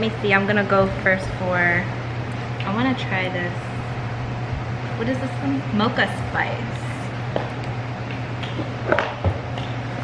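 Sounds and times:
steady low room hum: 0.0s - 10.0s.

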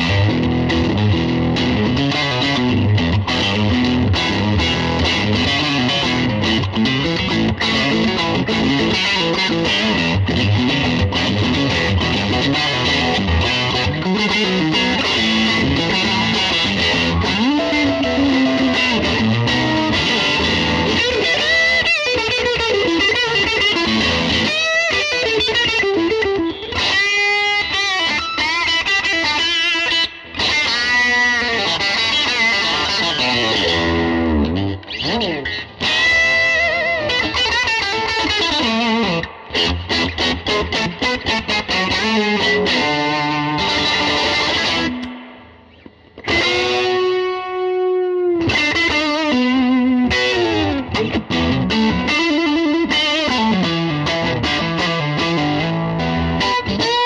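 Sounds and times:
electric guitar through amplifier: 0.0s - 57.0s.

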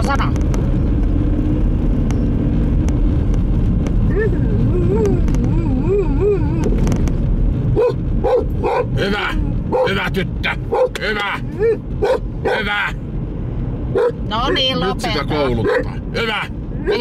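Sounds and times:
car road and engine noise: 0.0s - 17.0s
dog barking: 7.8s - 8.9s, 9.7s - 9.9s, 10.7s - 11.0s, 12.0s - 12.6s, 13.9s - 14.2s, 15.6s - 16.0s.

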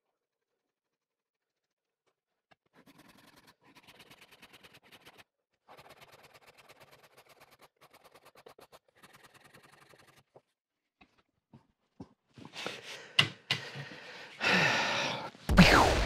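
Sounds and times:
hand tool scraping wood: 2.6s - 10.5s.

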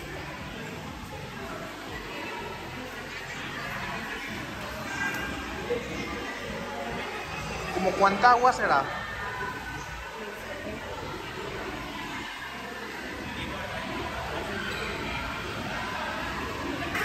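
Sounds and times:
crowded indoor hall noise: 0.0s - 17.0s
faint distant chatter: 0.0s - 17.0s.

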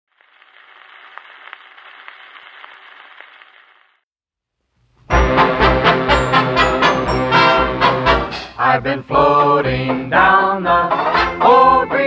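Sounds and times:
record clicks and crackles: 0.1s - 4.0s
record surface hiss: 0.1s - 4.0s, 4.6s - 5.1s.

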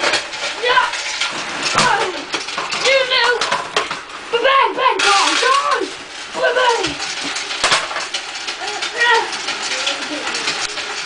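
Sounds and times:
plastic toys clattering: 0.0s - 11.0s.

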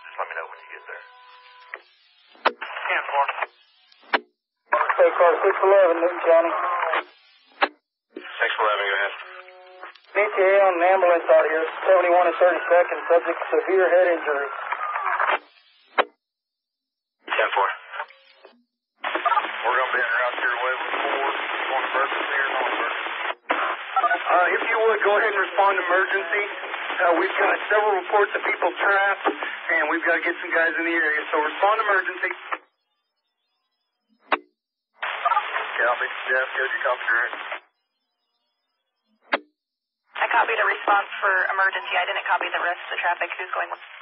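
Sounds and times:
voice over two-way radio: 0.0s - 1.0s, 2.5s - 3.5s, 4.7s - 7.1s, 8.2s - 9.4s, 10.0s - 15.0s, 17.3s - 18.1s, 19.0s - 32.6s, 35.1s - 37.6s, 40.2s - 43.8s.

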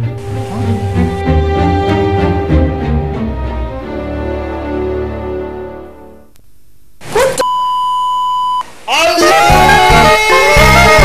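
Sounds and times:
steady electronic beep: 7.4s - 8.6s.

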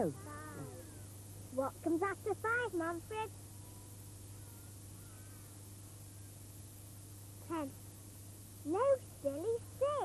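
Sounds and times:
young child's voice: 1.5s - 3.3s, 7.4s - 7.8s, 8.6s - 10.0s.

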